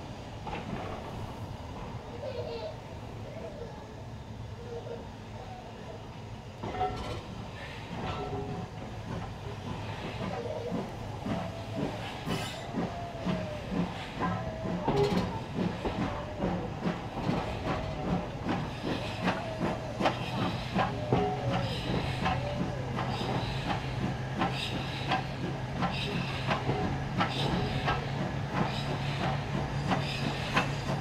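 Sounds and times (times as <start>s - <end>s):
train rumble: 0.0s - 31.0s
train wheels clicking over rail joints: 0.3s - 2.0s, 6.6s - 31.0s.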